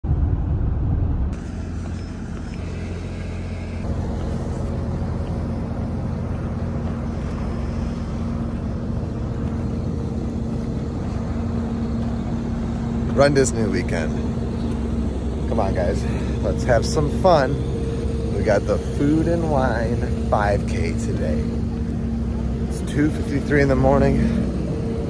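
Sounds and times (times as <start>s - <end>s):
road and vehicle rumble: 0.0s - 25.0s
faint steady hum: 0.1s - 25.0s.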